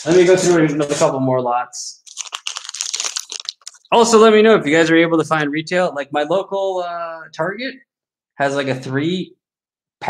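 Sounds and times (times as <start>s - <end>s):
plastic crinkling and rustling: 2.0s - 4.1s.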